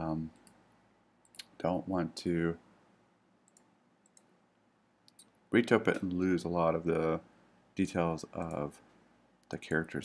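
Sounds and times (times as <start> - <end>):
faint computer clicks: 3.4 - 4.4, 5.1 - 6.1, 8.4 - 8.7.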